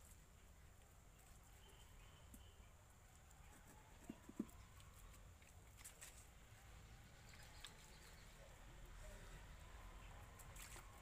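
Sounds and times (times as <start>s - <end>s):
hands patting wet mud: 10.2s - 11.0s.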